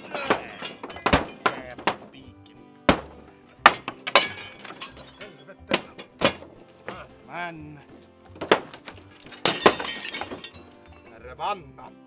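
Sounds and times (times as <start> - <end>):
glass window shattering: 0.0 - 2.1, 2.9 - 6.6, 8.3 - 10.9.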